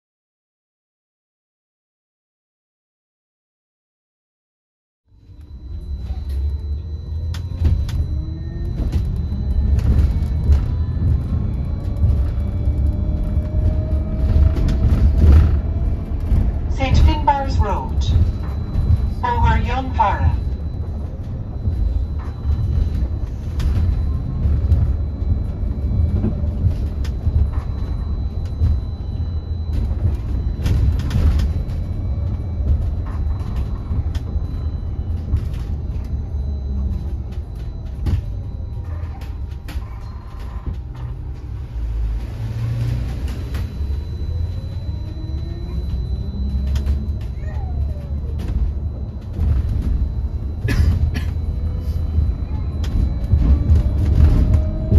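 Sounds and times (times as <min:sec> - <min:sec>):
bus cabin low rumble: 0:05.1 - 0:54.9
knocks and rattles from bus body: 0:07.1 - 0:54.9.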